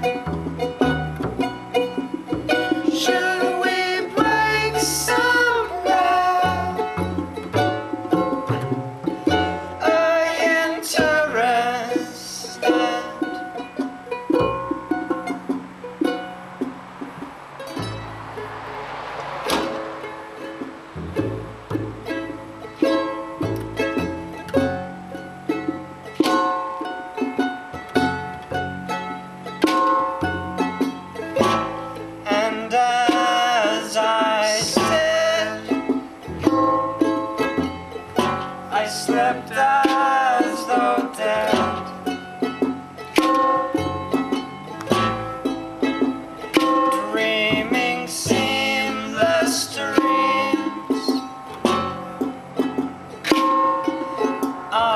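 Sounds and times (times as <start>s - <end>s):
charango plucked and strummed: 0.0s - 54.9s
plucked double bass: 0.0s - 54.9s
junk percussion hits: 14.3s - 26.7s, 51.2s - 54.8s.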